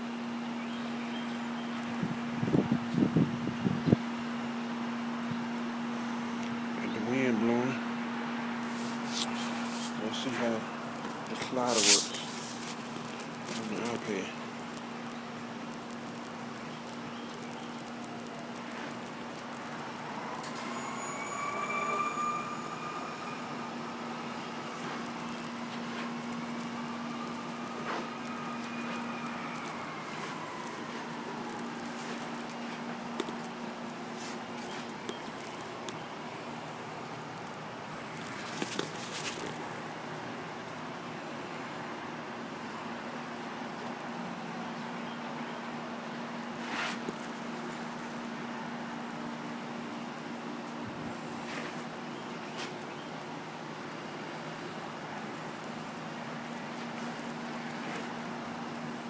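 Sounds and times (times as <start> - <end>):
distant siren wailing: 0.0 - 40.8
steady low hum: 0.0 - 45.0.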